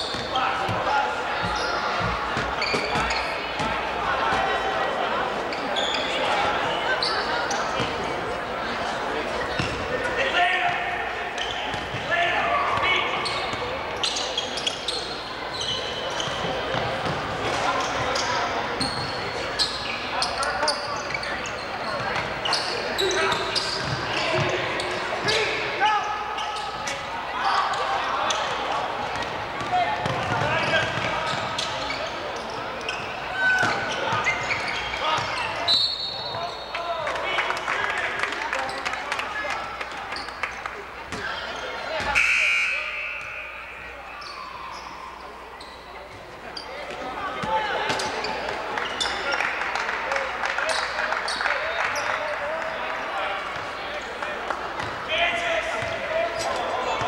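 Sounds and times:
shouts and chatter of people: 0.0s - 57.0s.

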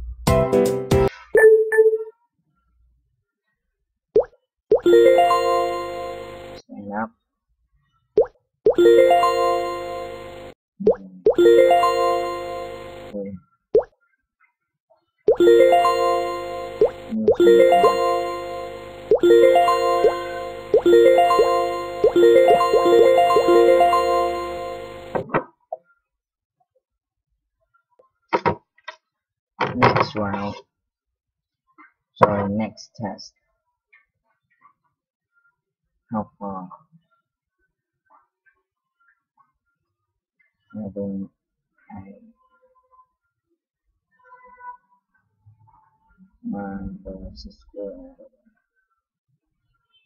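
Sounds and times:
plucked-string game music: 4.8s - 6.6s, 8.8s - 10.5s, 11.3s - 13.2s, 15.4s - 25.3s
bright rising chime: 4.9s - 6.6s, 8.8s - 10.5s, 11.4s - 13.2s, 15.4s - 25.2s.

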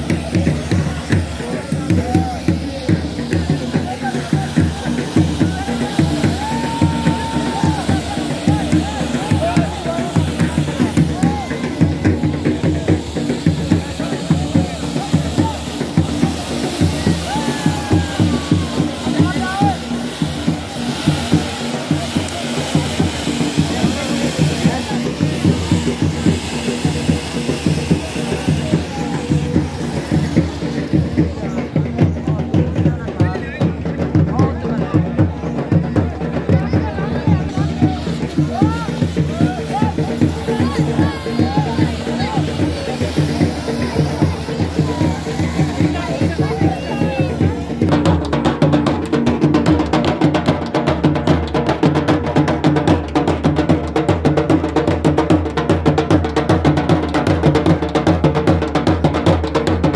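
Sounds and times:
fireworks hissing sparks: 0.0s - 34.3s, 35.1s - 51.3s
crowd voices: 0.0s - 59.9s
drums playing fast beat: 0.0s - 59.9s.

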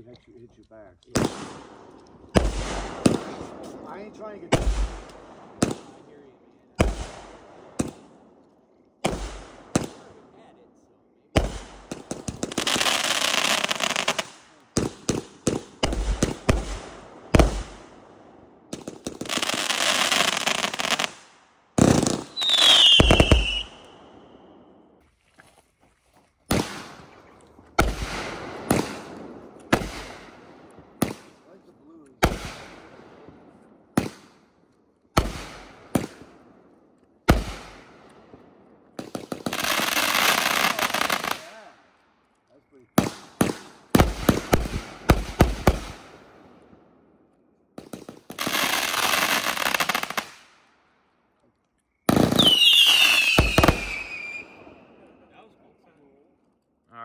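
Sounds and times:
crackling firework stars: 0.0s - 10.6s, 11.2s - 25.0s, 26.5s - 56.9s
falling firework whistle: 22.1s - 24.4s, 52.0s - 54.8s.

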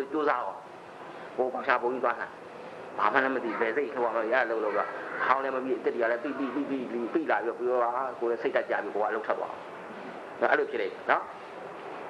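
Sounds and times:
man talking: 0.0s - 0.6s, 1.4s - 2.4s, 3.0s - 9.6s, 10.4s - 11.4s.

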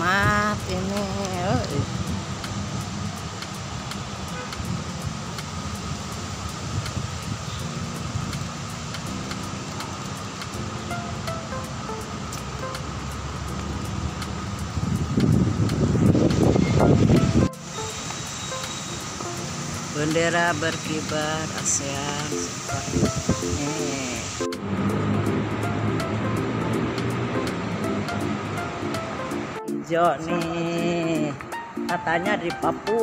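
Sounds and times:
vehicle rumbling on road: 0.0s - 23.6s, 24.2s - 29.6s.

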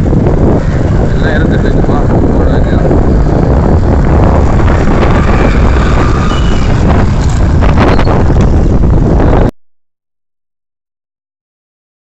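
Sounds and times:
motorbike engine: 0.0s - 9.3s
road noise: 0.0s - 9.5s
wind rumble on microphone: 0.0s - 9.6s.

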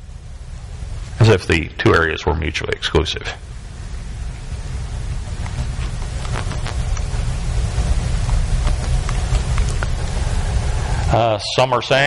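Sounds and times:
rushing noise with low rumble: 3.4s - 11.3s.

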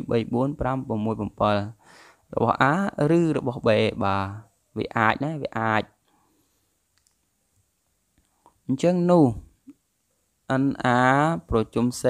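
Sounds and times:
faint clicks: 6.9s - 8.6s.

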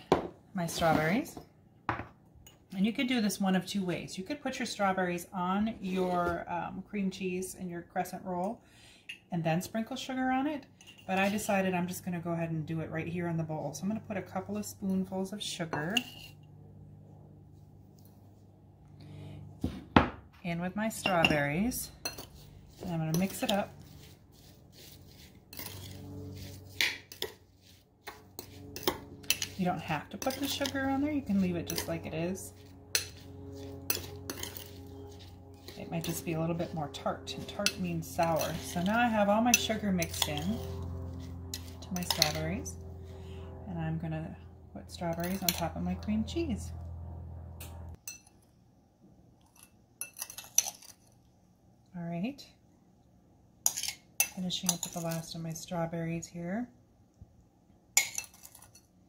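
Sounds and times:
spoon scraping and clinking bowl: 10.8s - 11.5s, 15.7s - 16.5s, 21.0s - 42.7s, 45.1s - 45.7s, 49.4s - 51.1s, 53.6s - 55.4s, 58.0s - 58.9s
metal spoon clinking in ceramic bowl: 22.0s - 22.4s, 28.4s - 29.6s, 58.0s - 58.8s.

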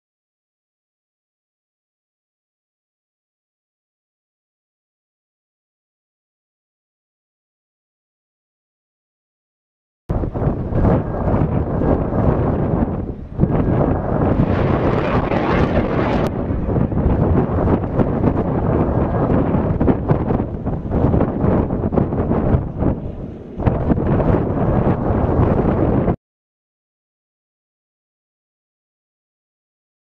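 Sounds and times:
rocket motor rumbling and crackling: 10.1s - 26.2s.

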